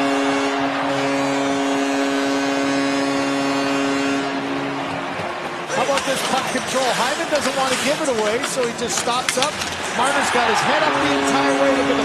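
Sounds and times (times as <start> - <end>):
arena goal horn blast: 0.0 - 5.3, 10.5 - 12.0
crowd cheering: 0.0 - 7.8, 9.7 - 12.0.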